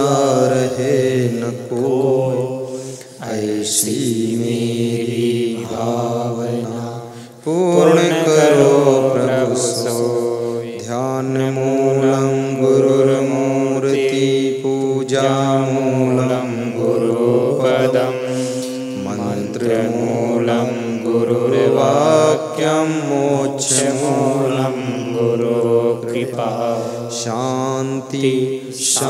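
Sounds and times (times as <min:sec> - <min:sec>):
man chanting in held notes: 0:00.0 - 0:29.0.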